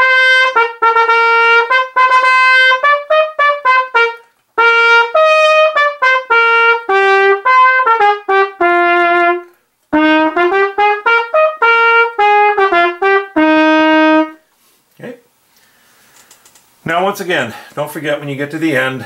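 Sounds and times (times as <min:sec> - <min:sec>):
solo trumpet march melody: 0:00.0 - 0:14.5.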